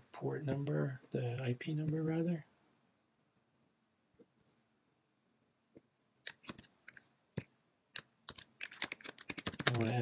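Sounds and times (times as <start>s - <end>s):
keyboard and mouse clicks: 6.2s - 7.0s, 8.0s - 10.0s.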